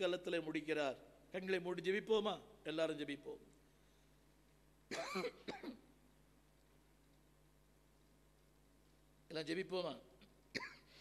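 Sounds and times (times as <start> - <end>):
man coughing: 4.9 - 5.9, 10.6 - 11.0.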